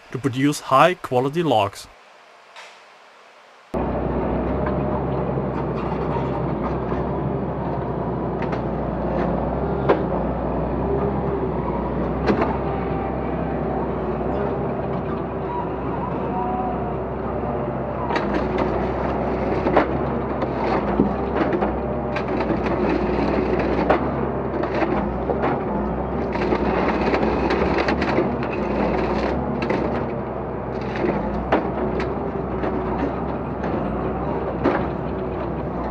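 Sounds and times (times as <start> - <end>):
diesel engine running: 3.7 - 35.9.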